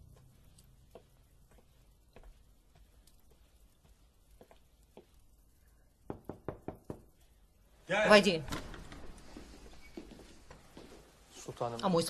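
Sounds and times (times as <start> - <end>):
knocking on a door: 6.1 - 7.1.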